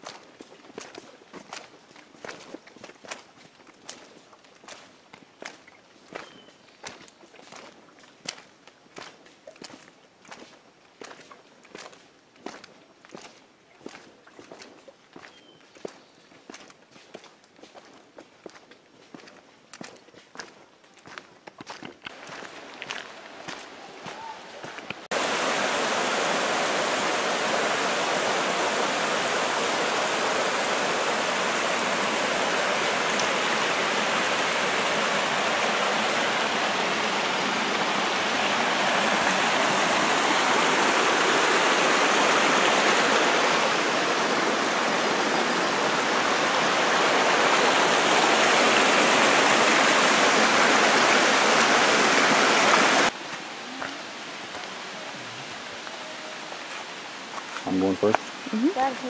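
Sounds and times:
water rushing over rocks: 0:22.1 - 0:59.0.

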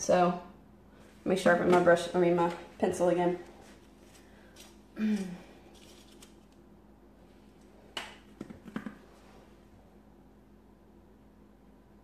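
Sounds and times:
person clearing throat: 0:05.0 - 0:05.5.

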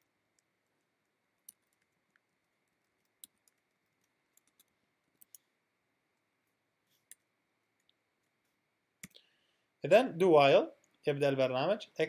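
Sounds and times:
man's voice: 0:09.8 - 0:12.0.

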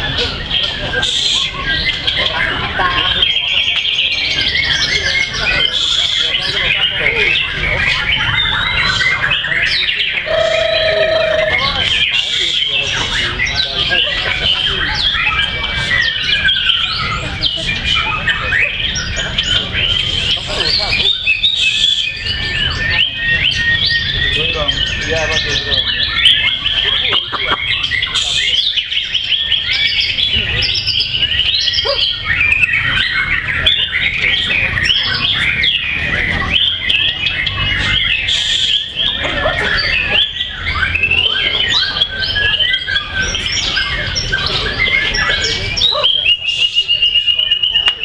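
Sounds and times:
low background murmur: 0:00.0 - 0:48.0
songbirds whistling and trilling: 0:00.0 - 0:48.0.

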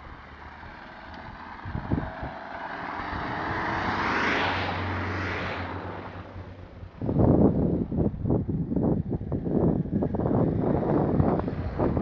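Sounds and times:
car passing: 0:00.0 - 0:12.0
wind noise: 0:00.0 - 0:12.0.

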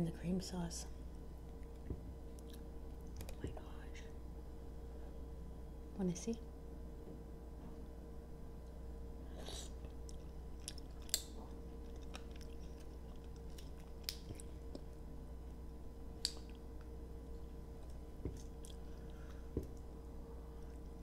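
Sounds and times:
faint steady hum: 0:00.0 - 0:21.0
chewing with wet mouth sounds: 0:01.5 - 0:03.4, 0:09.7 - 0:15.0, 0:16.2 - 0:19.9.

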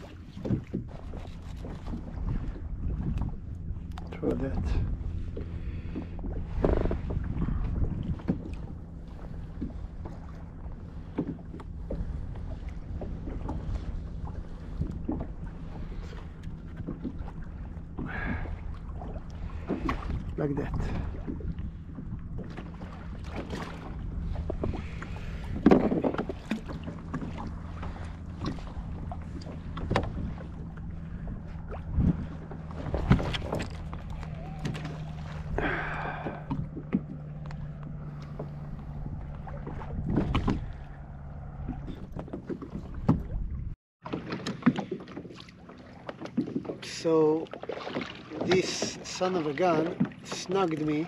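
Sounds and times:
steady low hum: 0:00.0 - 0:43.8
knocks and clicks of gear: 0:29.3 - 0:30.3, 0:44.1 - 0:45.4.

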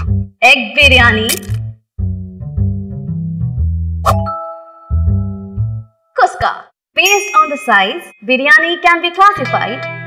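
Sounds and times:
light background music: 0:00.0 - 0:06.1, 0:07.1 - 0:10.0.

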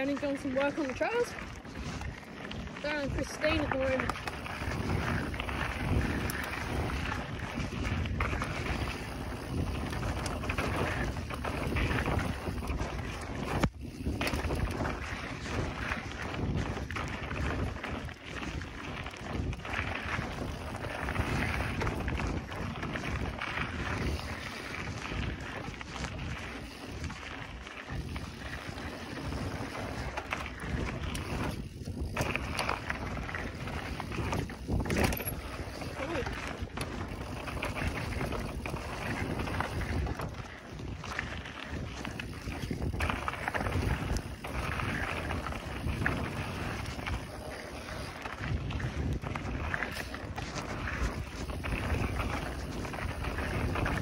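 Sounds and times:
bike tyres rolling on dirt: 0:00.0 - 0:54.0
wind buffeting microphone: 0:00.0 - 0:54.0
bike knocks and rattles: 0:28.0 - 0:40.2.

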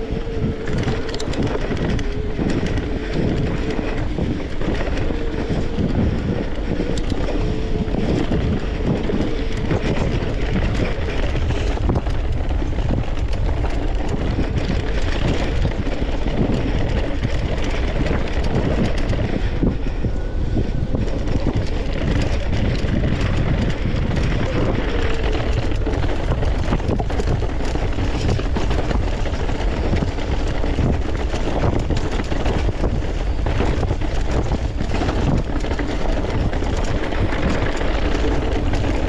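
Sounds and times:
bike clicks and rattles: 0:00.0 - 0:39.0
wind buffeting microphone: 0:00.0 - 0:39.0.

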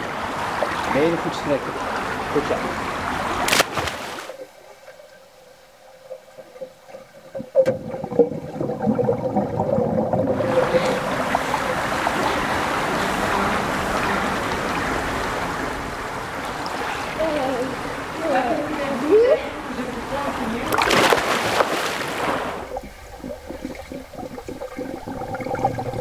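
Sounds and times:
pool water splashing: 0:00.0 - 0:26.0
splash of diving into a pool: 0:03.4 - 0:04.4, 0:20.7 - 0:22.7
muffled underwater sound: 0:04.4 - 0:15.9, 0:22.4 - 0:26.0.

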